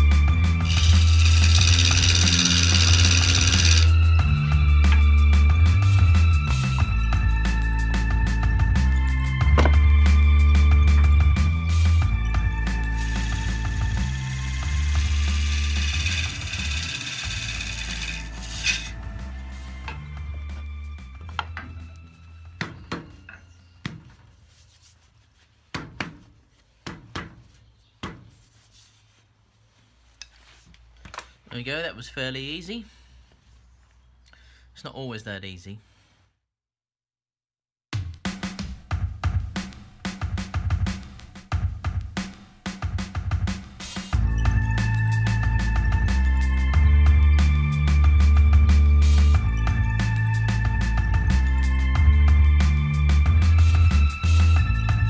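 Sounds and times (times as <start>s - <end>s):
wood lathe cutting hiss: 0.6s - 3.9s, 12.9s - 19.0s
music with steady beat: 1.5s - 14.9s, 37.9s - 55.0s
hand knocking on wood: 9.6s - 9.8s.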